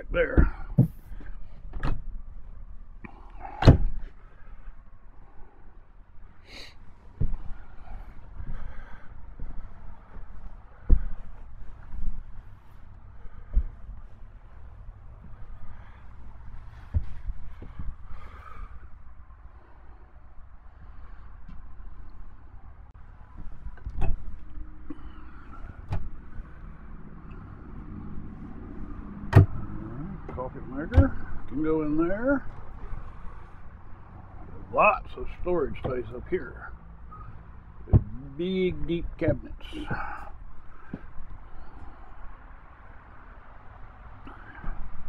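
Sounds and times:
highway traffic rumble: 0.0s - 45.0s
footsteps and handling knocks: 0.3s - 2.4s, 7.0s - 18.9s, 37.7s - 38.3s, 39.0s - 42.0s.

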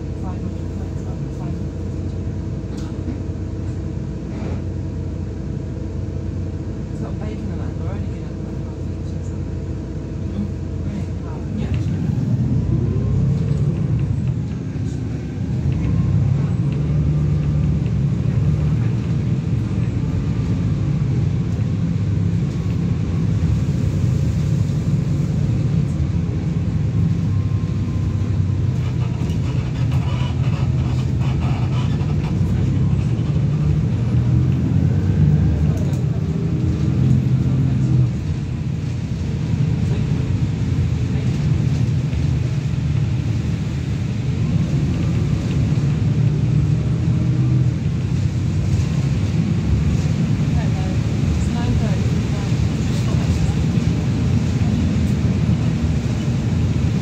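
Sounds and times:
bus diesel engine drone: 0.0s - 57.0s.

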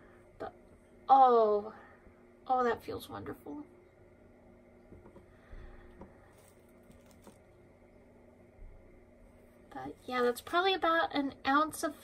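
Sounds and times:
soft rustles of wool: 6.2s - 7.5s.

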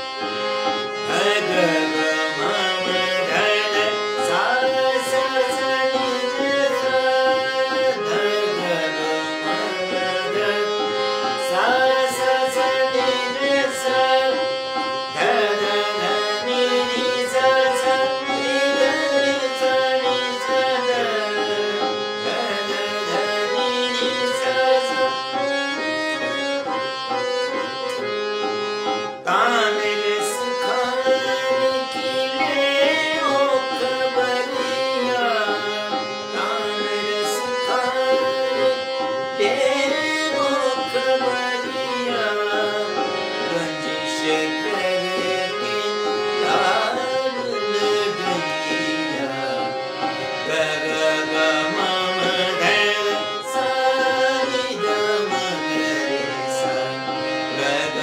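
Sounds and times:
harmonium: 0.0s - 58.0s
tabla rhythm: 0.0s - 58.0s
man singing: 0.9s - 28.1s, 29.2s - 58.0s.

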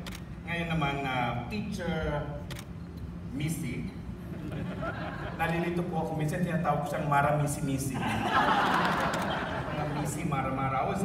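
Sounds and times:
man speaking into a microphone: 0.4s - 2.5s, 5.4s - 8.2s, 9.8s - 11.0s.

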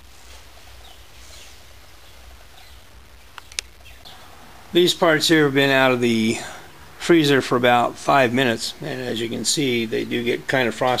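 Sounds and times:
steady low hum: 0.0s - 11.0s
faint high chirps: 0.8s - 5.0s
sharp clicks: 3.2s - 4.1s.

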